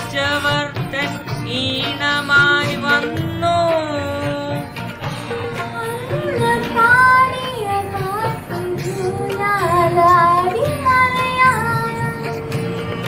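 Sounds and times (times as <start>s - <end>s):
girl singing: 0.0s - 13.0s.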